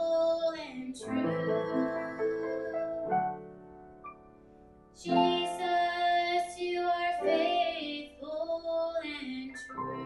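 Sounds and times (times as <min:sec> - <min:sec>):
person singing with vibrato: 0:00.0 - 0:03.4, 0:05.0 - 0:09.7
keyboard accompaniment: 0:01.0 - 0:08.4.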